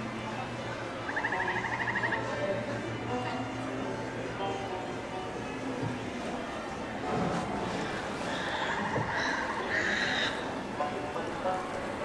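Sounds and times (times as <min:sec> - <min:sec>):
background ambience: 0:00.0 - 0:12.0
pulsing croak-like call: 0:01.1 - 0:02.4, 0:08.2 - 0:10.6.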